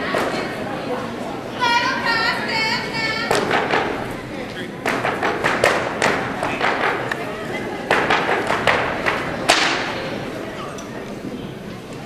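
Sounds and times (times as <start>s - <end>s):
sharp percussive crack with echo: 4.8s - 7.2s, 7.9s - 10.0s.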